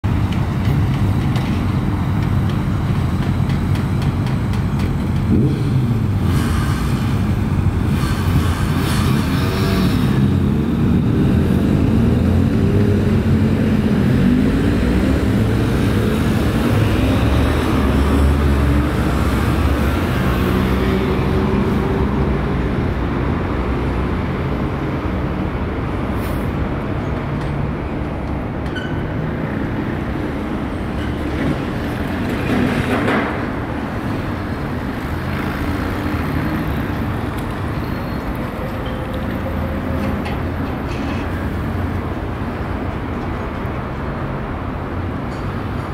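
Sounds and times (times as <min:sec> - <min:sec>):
urban traffic rumble: 0:00.0 - 0:45.9.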